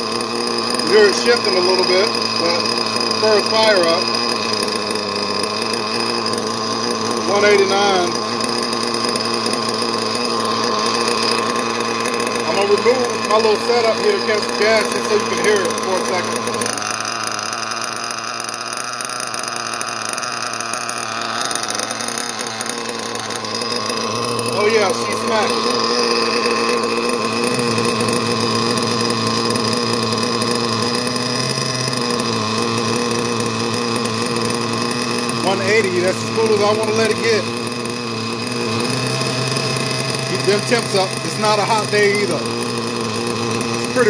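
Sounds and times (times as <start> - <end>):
heat gun hissing: 0.0 - 44.0
nitro engine idling: 0.0 - 44.0.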